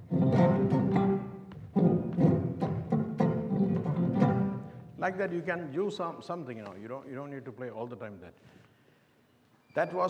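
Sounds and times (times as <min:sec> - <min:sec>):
electric bass guitar slapping: 0:00.0 - 0:04.8.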